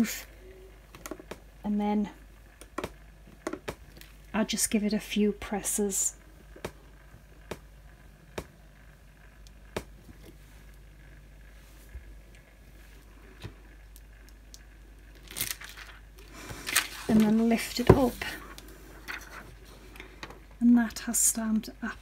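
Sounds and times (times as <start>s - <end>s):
low steady hum: 0.0s - 22.0s
plastic film crinkling: 15.1s - 19.4s.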